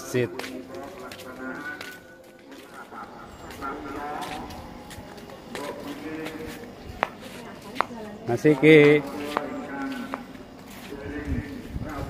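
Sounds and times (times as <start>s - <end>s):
faint chanting voices: 0.0s - 12.0s.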